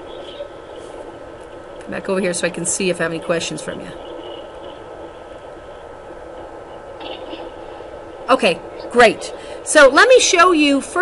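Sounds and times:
faint hum: 0.0 - 11.0
open microphone hiss: 0.0 - 11.0.

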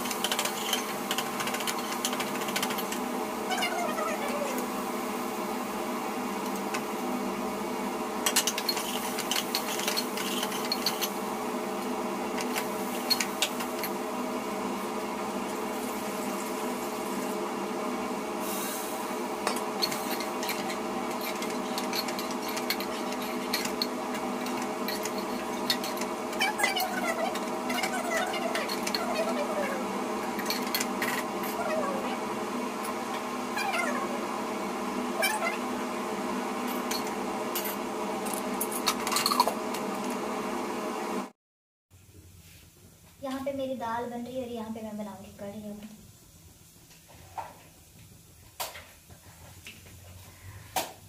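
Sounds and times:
steady hum: 0.0 - 41.3.

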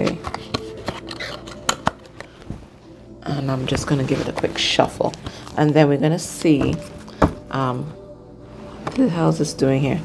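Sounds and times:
cards and box clicking and tapping: 0.0 - 2.6
soft background music: 0.0 - 10.0.

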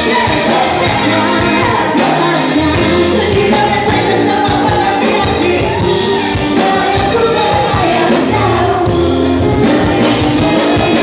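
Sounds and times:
band playing pop song: 0.0 - 11.0
singers singing together: 0.0 - 11.0.

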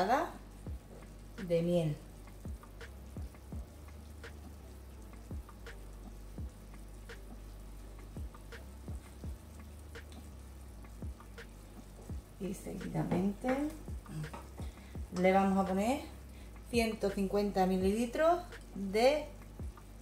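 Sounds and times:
low steady hum: 0.0 - 20.0
meat frying in a pot: 0.0 - 20.0
crackles and pops: 2.3 - 15.3.

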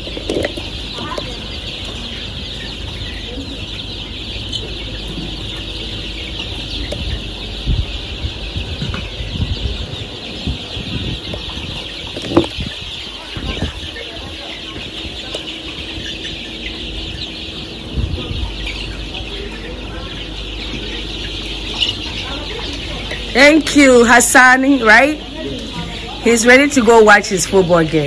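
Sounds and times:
chickens chirping and clucking: 0.0 - 28.0.

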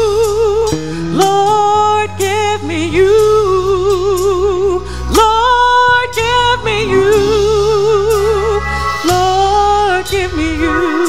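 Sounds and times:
instrumental accompaniment: 0.0 - 11.0
woman singing: 0.0 - 11.0.

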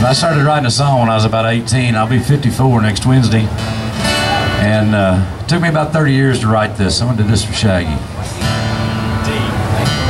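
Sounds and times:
acoustic guitar strumming: 0.0 - 10.0
live country band: 0.0 - 10.0.

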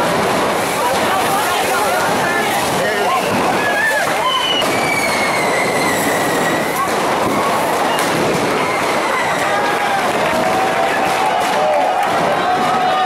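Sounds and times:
firework rockets fizzing: 0.0 - 13.0
sharp firework cracks: 0.0 - 13.0
people shouting: 0.8 - 13.0
falling high whistle: 3.6 - 6.8.

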